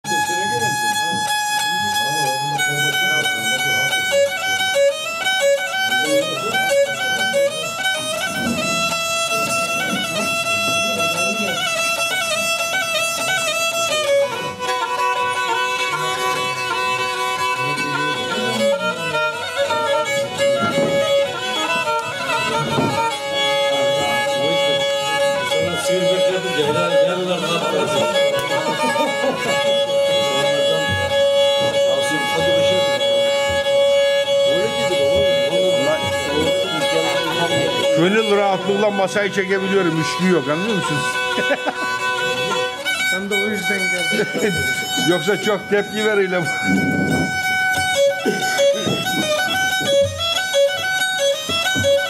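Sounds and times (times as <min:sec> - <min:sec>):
bowed fiddle melody: 0:00.0 - 0:52.0
people chattering: 0:00.0 - 0:52.0.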